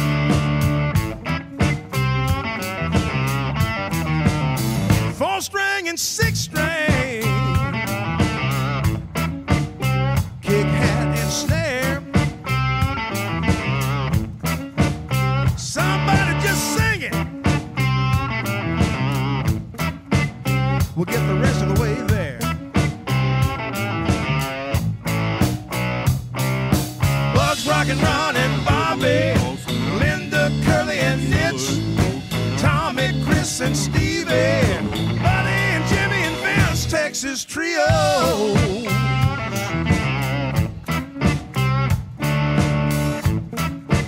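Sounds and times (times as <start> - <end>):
bass line: 0.0 - 5.3, 6.2 - 37.1, 37.8 - 44.0
drums: 0.0 - 44.0
electric guitar lead lines: 0.0 - 44.0.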